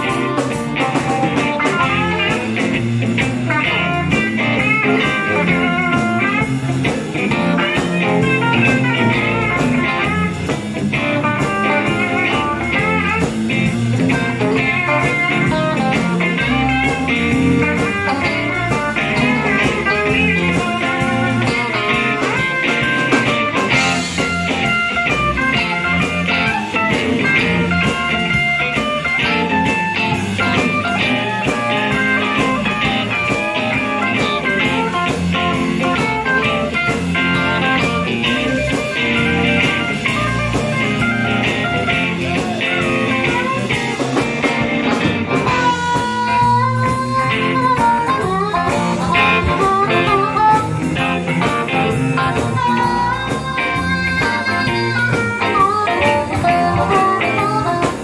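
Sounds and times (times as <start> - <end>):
bass guitar: 0.0 - 58.0
drums: 0.0 - 58.0
electric guitars: 0.0 - 58.0
harmonica: 45.5 - 51.0.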